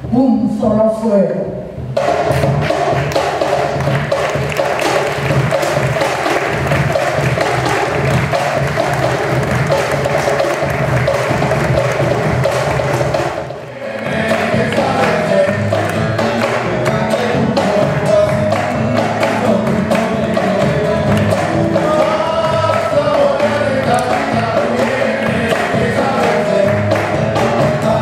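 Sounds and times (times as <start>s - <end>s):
fast percussion rhythm: 0.0s - 28.0s
music with guitar: 14.0s - 28.0s.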